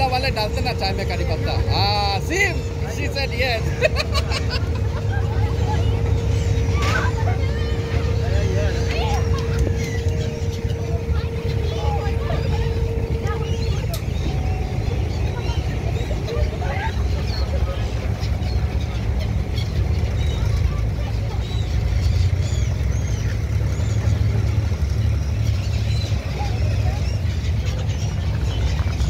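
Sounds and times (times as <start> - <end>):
boat engine rumble: 0.0 - 29.0
gulls calling: 0.0 - 29.0.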